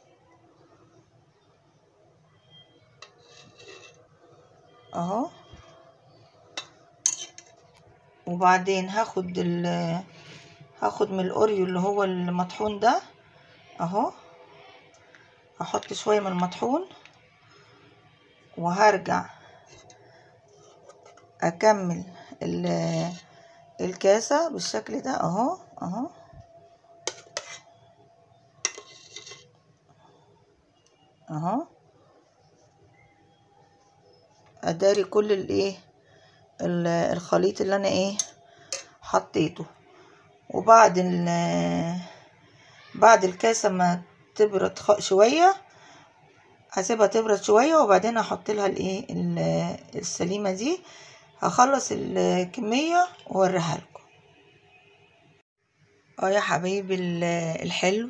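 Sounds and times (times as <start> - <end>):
metal ladle scraping pot: 3.0 - 4.1, 6.6 - 7.6, 19.7 - 21.4, 27.0 - 27.9, 28.6 - 29.6, 38.2 - 39.0.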